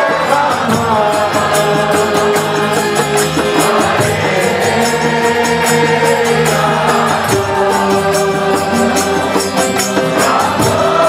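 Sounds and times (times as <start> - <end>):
drum beat: 0.0 - 11.0
group chanting: 0.0 - 11.0
harmonium: 0.0 - 11.0.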